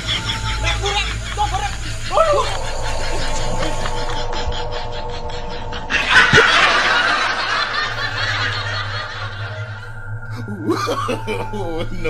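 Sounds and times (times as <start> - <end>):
burst of laughter: 0.0 - 9.9
steady low hum: 0.0 - 12.0.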